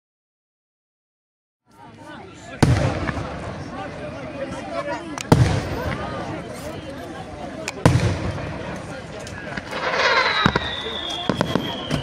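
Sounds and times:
crowd voices: 1.7 - 12.0
firework bang echoing: 2.6 - 3.9, 5.3 - 6.1, 7.8 - 8.9, 9.5 - 12.0.

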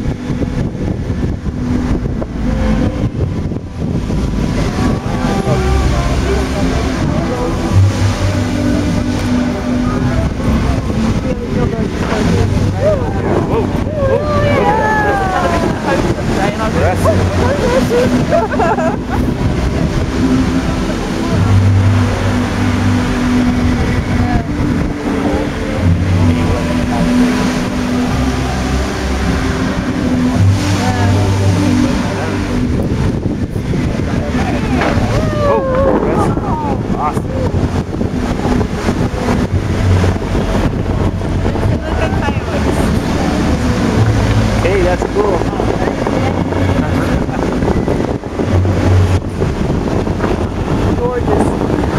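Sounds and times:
crowd voices: 0.0 - 51.9
fountain water jets splashing: 0.0 - 51.9
wind buffeting microphone: 0.0 - 51.9.

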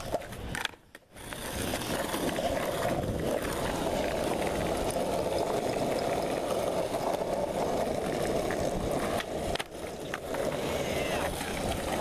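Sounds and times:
skateboard clacks: 0.0 - 12.0
skateboard wheels on asphalt: 0.0 - 12.0.

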